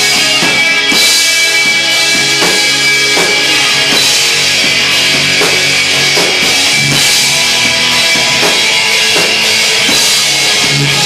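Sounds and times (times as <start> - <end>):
heavy distorted guitars: 0.0 - 11.0
slow drum beat: 0.0 - 11.0.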